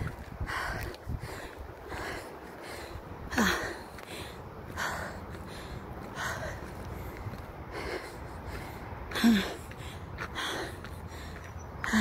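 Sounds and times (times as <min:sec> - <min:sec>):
heavy breathing: 0:00.0 - 0:12.0.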